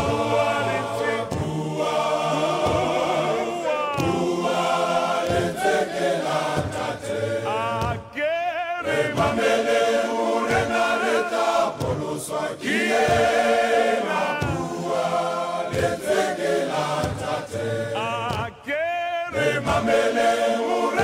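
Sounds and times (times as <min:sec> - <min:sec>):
men's choir singing: 0:00.0 - 0:21.0.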